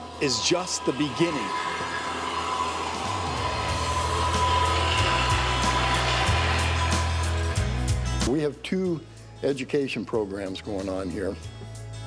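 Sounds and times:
circular saw cutting wood: 0.0s - 7.7s
background music: 0.0s - 12.0s.

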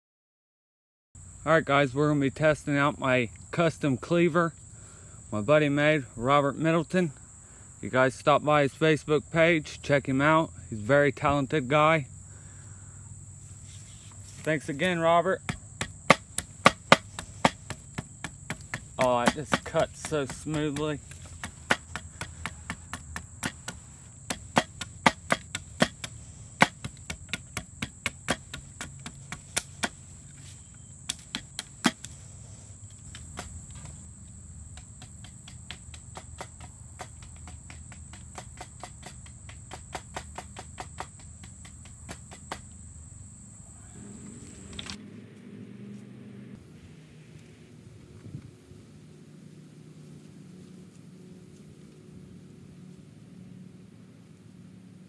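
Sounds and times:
high insect drone: 1.2s - 55.0s
cleaver chopping wood: 14.3s - 32.2s, 33.0s - 34.0s, 34.7s - 42.8s.

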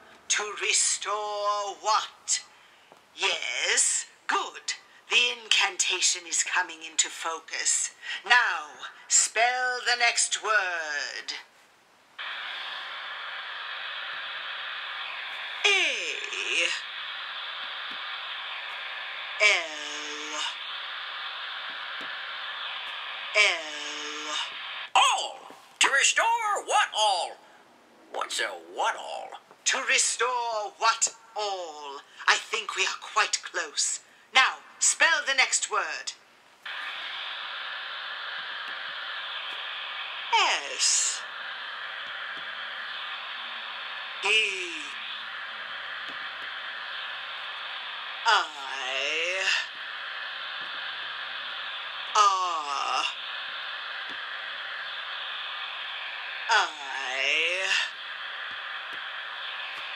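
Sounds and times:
radio static hiss: 0.0s - 59.9s.

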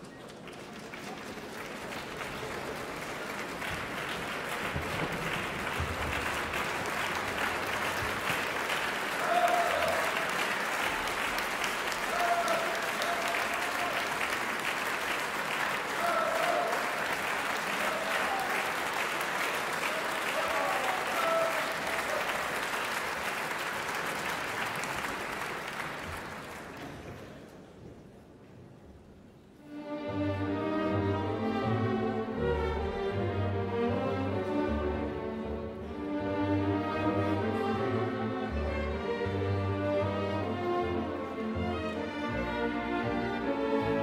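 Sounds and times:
audience applauding: 0.0s - 27.6s
crowd calling out: 9.1s - 10.4s, 12.0s - 14.1s, 15.9s - 17.0s.

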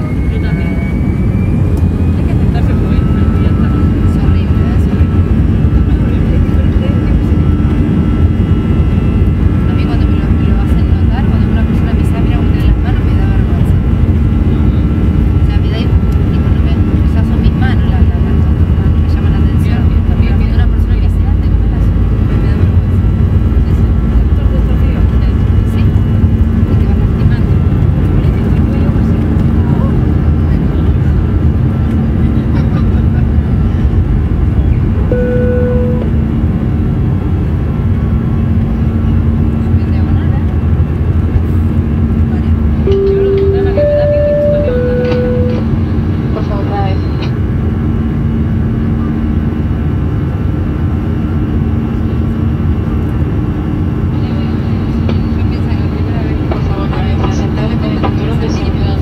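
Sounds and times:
jet engine rumble in cabin: 0.0s - 59.0s
short electronic tones: 35.0s - 36.2s, 42.9s - 45.8s.

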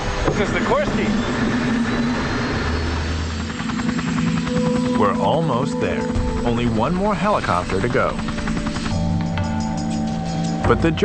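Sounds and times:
helicopter engine hum: 0.0s - 11.0s
helicopter rotor chop: 0.0s - 11.0s.

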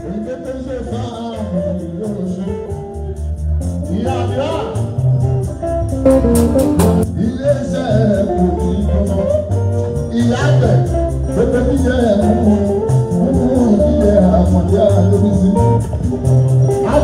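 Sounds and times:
man singing into a microphone: 0.0s - 2.8s, 7.0s - 16.0s, 16.7s - 17.0s
bass guitar: 0.0s - 17.0s
electric guitar: 0.0s - 17.0s
steady percussion beat: 0.0s - 17.0s.

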